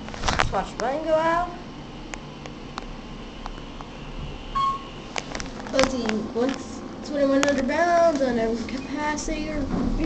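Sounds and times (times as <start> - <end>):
elevator hum: 0.8 - 10.0.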